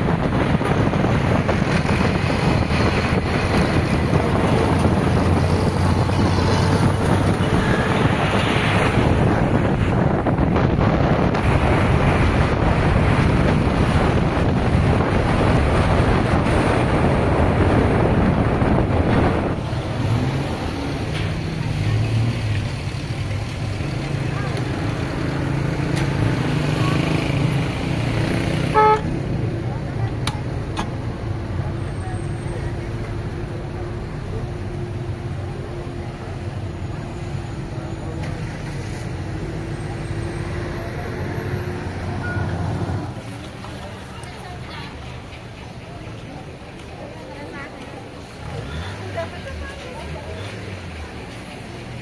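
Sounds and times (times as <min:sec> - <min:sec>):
street traffic: 0:00.0 - 0:52.0
voices on street: 0:00.0 - 0:52.0
wind and road noise: 0:00.0 - 0:52.0
car horn toot: 0:07.3 - 0:08.4, 0:28.7 - 0:29.1.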